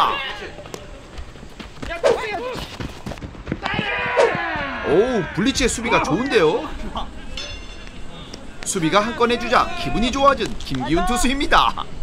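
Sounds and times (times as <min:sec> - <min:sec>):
loud shout: 0:03.6 - 0:06.7, 0:08.8 - 0:10.2
players calling out: 0:03.6 - 0:12.0.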